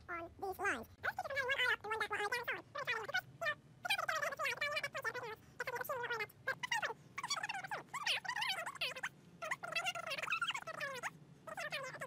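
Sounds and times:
sped-up woman's voice chattering: 0.0 - 12.0.

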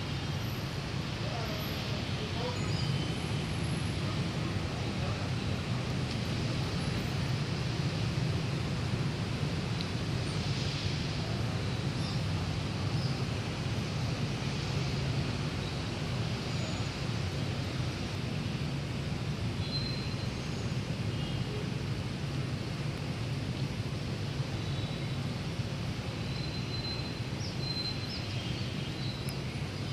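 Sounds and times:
distant street traffic rumble: 0.0 - 29.9.

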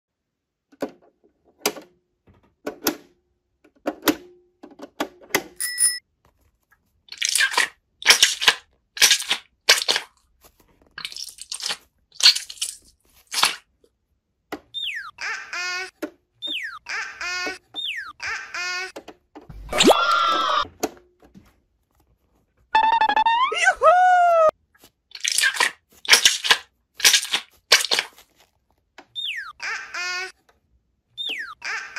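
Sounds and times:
brief ding: 5.6 - 6.0
foam ball squishing: 24.8 - 28.8.

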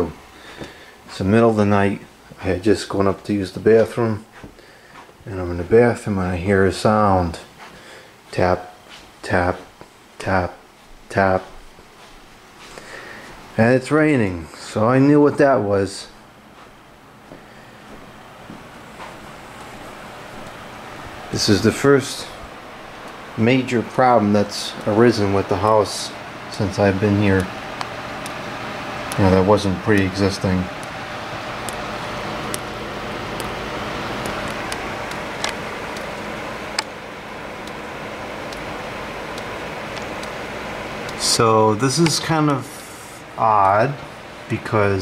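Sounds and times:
steady rain hiss: 0.0 - 45.0.

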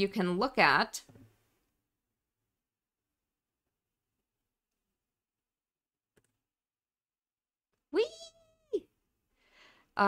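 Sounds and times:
soft breath in: 9.3 - 9.9.

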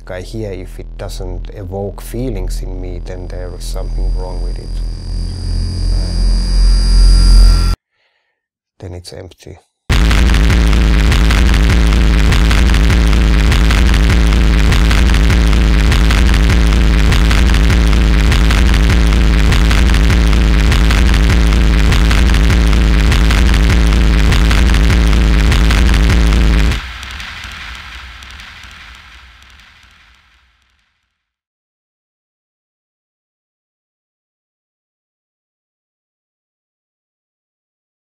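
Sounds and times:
harsh electronic noise music: 0.1 - 7.8, 9.9 - 30.6.

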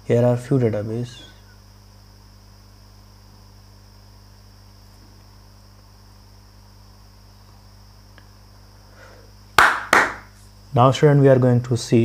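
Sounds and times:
electrical hum with high whine: 0.0 - 12.0.

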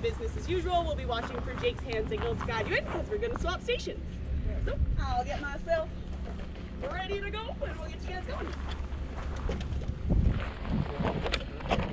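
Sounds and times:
wind buffeting microphone: 0.0 - 11.9.

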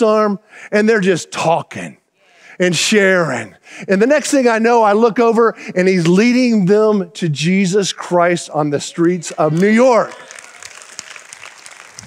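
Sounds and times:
congregation applauding softly: 9.4 - 12.0.

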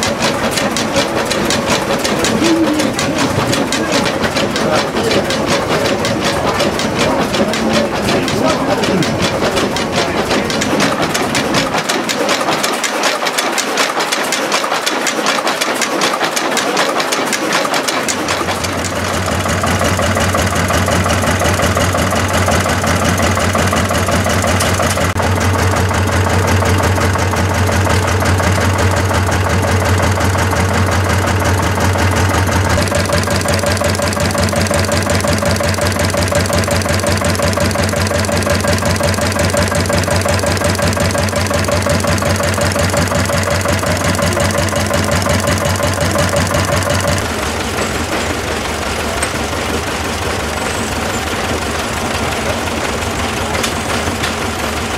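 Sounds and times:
stationary engines knocking: 0.0 - 54.9.

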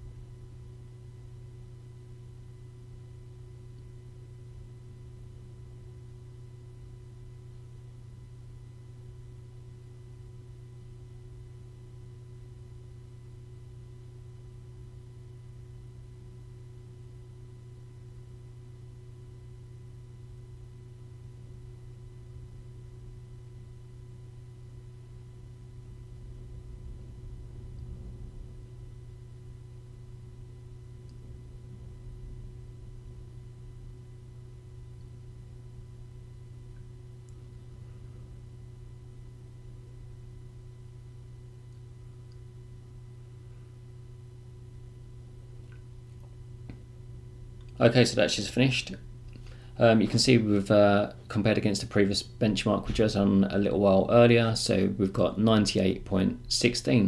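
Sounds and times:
computer cooling fans humming: 0.0 - 57.0
faint constant tone: 0.0 - 57.0.

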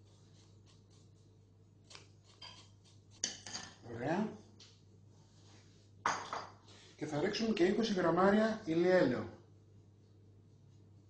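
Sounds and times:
spoon and sieve clinking in bowl: 3.2 - 3.8.

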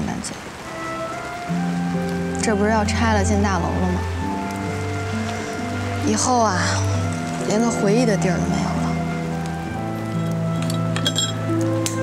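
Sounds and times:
soft background music: 0.0 - 12.0
beer glasses clinking: 10.1 - 12.0.

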